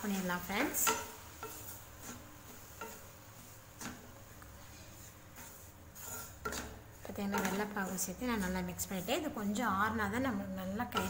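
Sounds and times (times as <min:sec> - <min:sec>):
spatula scraping a pan: 0:00.0 - 0:09.8.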